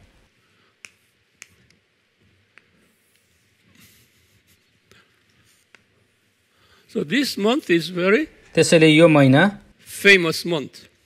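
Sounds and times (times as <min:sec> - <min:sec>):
chalk tapping on blackboard: 0:00.8 - 0:01.8.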